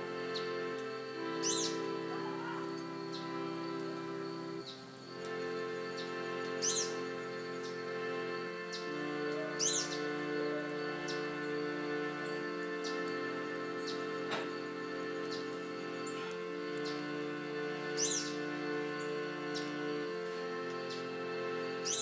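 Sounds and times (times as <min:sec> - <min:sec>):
harmonium chords: 0:00.0 - 0:22.0
bird high sweeping call: 0:01.3 - 0:03.3, 0:06.0 - 0:07.0, 0:08.7 - 0:11.2, 0:18.0 - 0:18.4.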